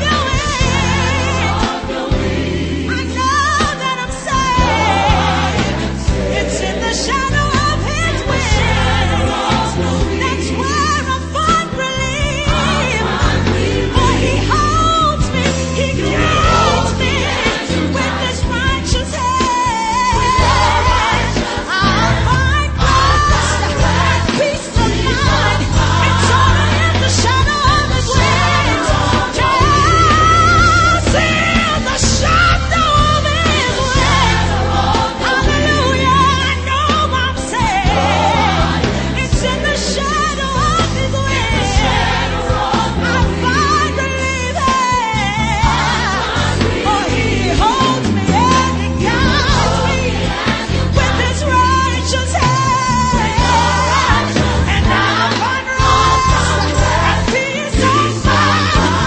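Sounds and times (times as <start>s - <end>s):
band playing: 0.0s - 59.0s
instrumental backing with bass: 0.0s - 59.0s
voices singing gospel song: 0.0s - 59.0s.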